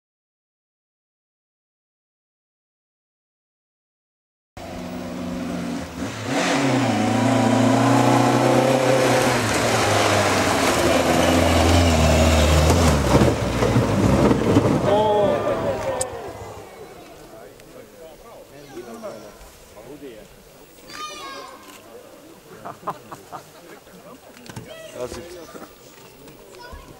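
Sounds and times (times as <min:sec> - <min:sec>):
rally car engine at high revs: 0:04.6 - 0:16.7
tyres on gravel: 0:07.8 - 0:22.3
people's voices: 0:14.7 - 0:26.9.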